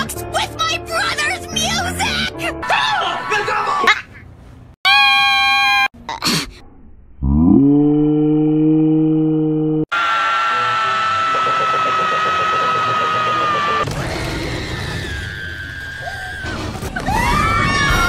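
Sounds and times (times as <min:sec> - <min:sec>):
cartoon screams: 0:04.9 - 0:05.9, 0:09.9 - 0:18.0
low drawn-out groan: 0:06.6 - 0:09.8.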